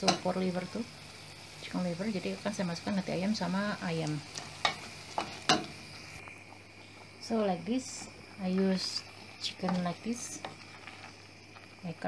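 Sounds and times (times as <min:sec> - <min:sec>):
sauce sizzling: 0:00.0 - 0:12.0.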